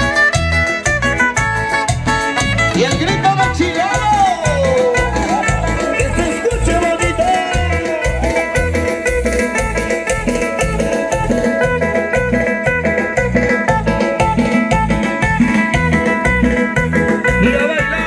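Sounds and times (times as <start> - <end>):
guitar melody: 0.0 - 18.0
pulsing bass beat: 0.0 - 18.0.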